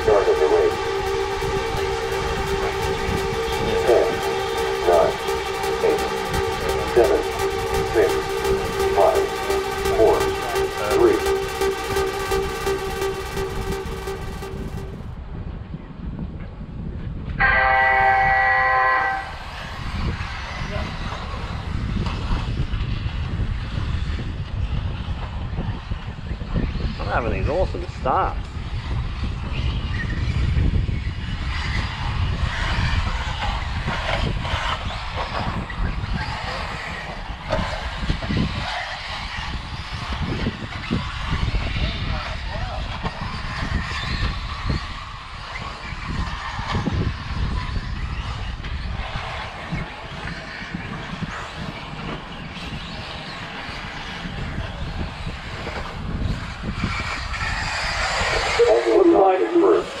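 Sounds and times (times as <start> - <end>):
steady low rumble: 0.0 - 15.4
rc car motors and tyres: 17.7 - 59.2.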